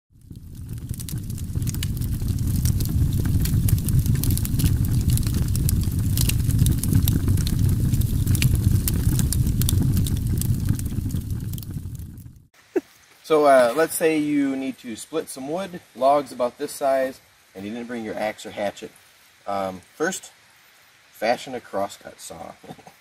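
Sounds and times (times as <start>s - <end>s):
sharp crackles and pops: 0.1s - 20.2s
low rumble: 0.2s - 12.5s.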